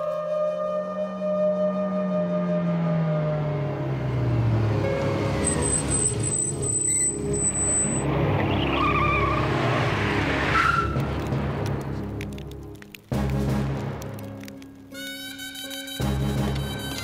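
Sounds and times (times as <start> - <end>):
cars braking to a stop: 2.6 - 11.2
car engines running: 3.0 - 12.3
background music: 4.5 - 17.0
tyres squealing and skidding: 4.8 - 11.1.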